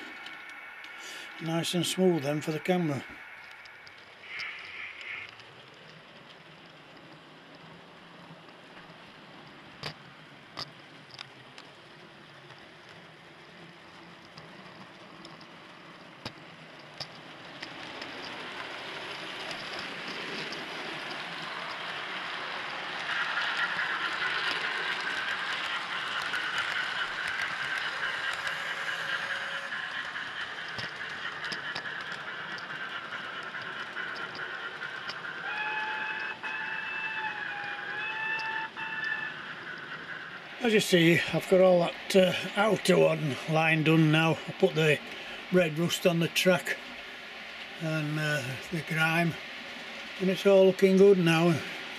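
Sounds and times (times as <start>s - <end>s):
model train wheels rattling on rail: 0.0s - 51.9s.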